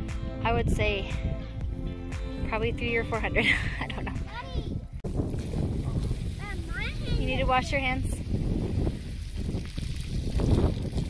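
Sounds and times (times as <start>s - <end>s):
wind noise on microphone: 0.4s - 11.0s
hose water spraying and splashing: 5.1s - 11.0s.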